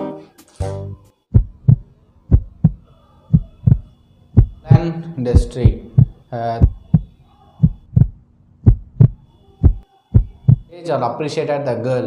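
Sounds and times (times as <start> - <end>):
heartbeat thumps: 1.3 - 10.7.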